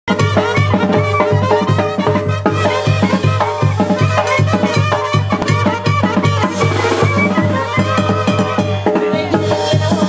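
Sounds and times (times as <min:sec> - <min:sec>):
brass band music: 0:00.1 - 0:10.0
drum kit beat: 0:00.1 - 0:10.0
trumpet melody: 0:00.1 - 0:10.0
tuba bass notes: 0:01.6 - 0:08.6.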